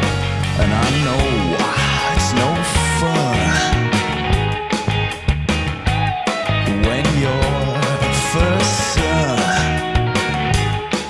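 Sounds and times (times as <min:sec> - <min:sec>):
bass guitar: 0:00.0 - 0:11.0
electric guitar: 0:00.0 - 0:11.0.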